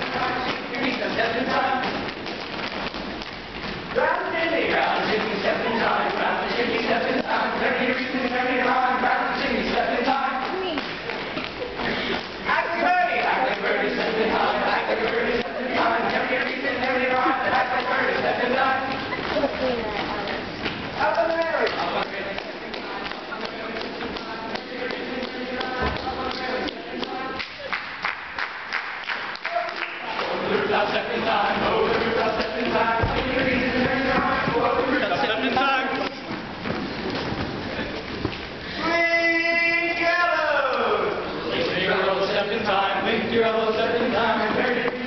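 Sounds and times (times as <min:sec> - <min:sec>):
feet stamping on wooden stage: 0:00.0 - 0:04.2, 0:31.8 - 0:38.7
feet stomping on stage floor: 0:31.9 - 0:35.0.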